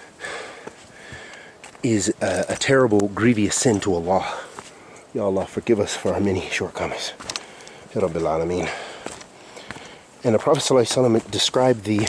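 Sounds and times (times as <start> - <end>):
man breathing in through nose: 0.0 - 1.6, 8.7 - 10.1
man speaking: 1.8 - 4.5, 5.1 - 7.3, 7.9 - 8.9, 10.2 - 12.0.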